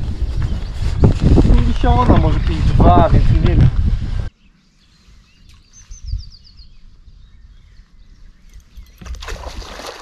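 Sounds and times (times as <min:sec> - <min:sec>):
songbird singing: 0:04.3 - 0:09.6.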